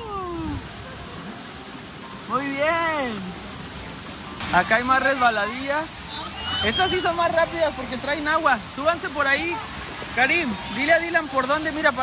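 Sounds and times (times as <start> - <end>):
pool water splashing: 0.0 - 12.0.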